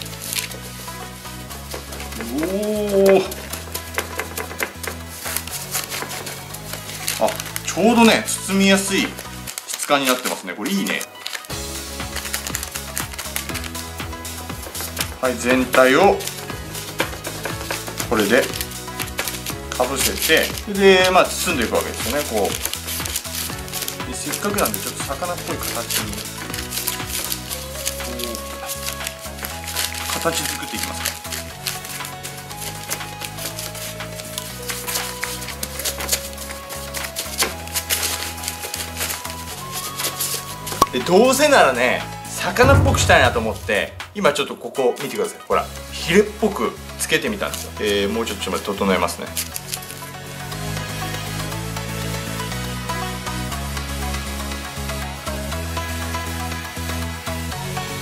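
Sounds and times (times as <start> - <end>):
background music with bass line: 0.0 - 9.6, 11.5 - 44.4, 48.8 - 58.0
gloved hands rubbing salt crust: 0.0 - 15.5, 16.2 - 40.8.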